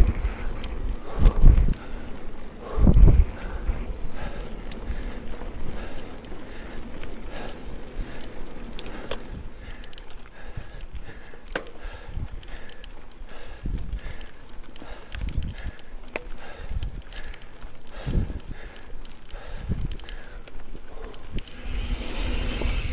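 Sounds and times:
bike rattling and clicking: 0.0 - 22.9
bike tyres rolling on gravel: 0.0 - 22.9
wind buffeting microphone: 0.0 - 22.9.

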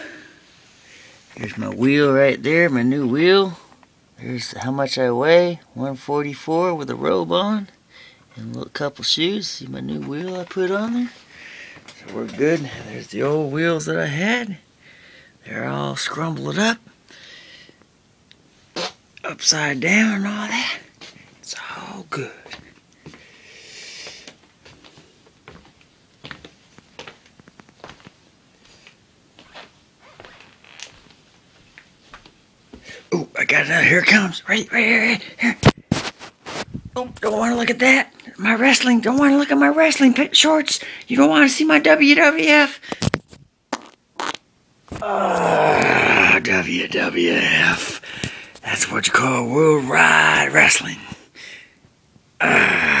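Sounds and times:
cloth rustling and rubbing: 35.7 - 37.3
man's drawn-out wordless vocal: 44.9 - 51.3, 52.4 - 53.0.

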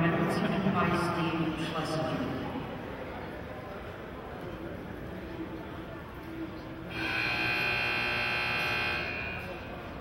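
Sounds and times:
arena buzzer tone: 6.9 - 9.5.

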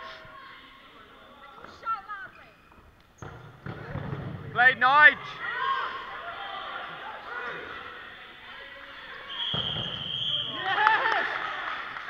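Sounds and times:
balls hitting hall floor: 2.7 - 5.3, 9.3 - 11.1.

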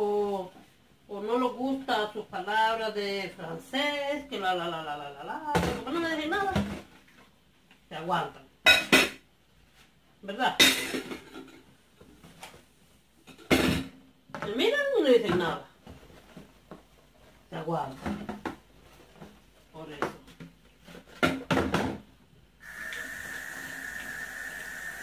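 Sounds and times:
woman talking: 0.0 - 6.7, 7.9 - 8.4, 14.4 - 15.8, 17.5 - 18.1, 19.7 - 20.3
dishes clinking in a sink: 8.6 - 9.2, 10.6 - 11.7.

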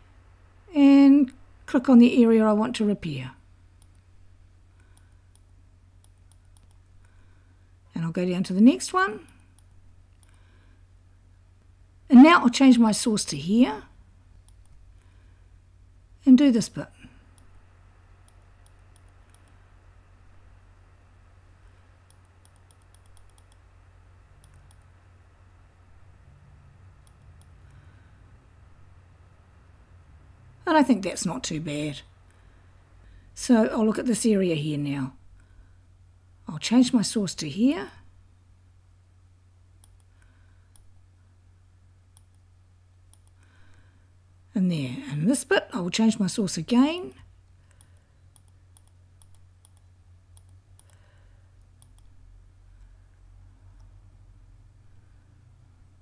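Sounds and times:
computer mouse and keyboard clicks: 4.8 - 6.9, 18.2 - 19.6, 22.1 - 23.6, 24.4 - 24.9, 43.1 - 43.4, 47.7 - 51.0, 51.6 - 52.2.

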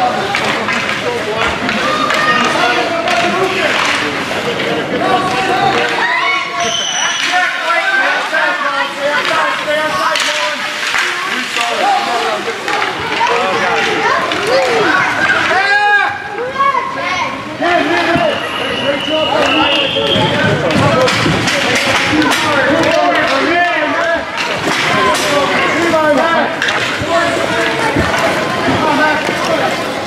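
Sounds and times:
crowd shouting and calling: 0.0 - 30.0
hockey sticks and puck knocking: 0.2 - 6.1, 7.1 - 15.7, 19.4 - 29.9.

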